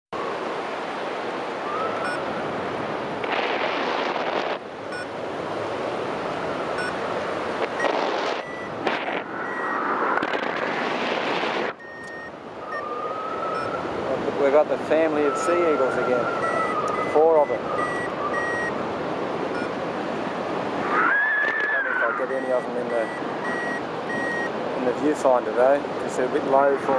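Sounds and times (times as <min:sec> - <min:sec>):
wind rushing over microphone: 0:00.2 - 0:22.4
faint short steady tones: 0:07.8 - 0:08.8, 0:11.8 - 0:12.9, 0:16.3 - 0:18.7, 0:22.3 - 0:24.5.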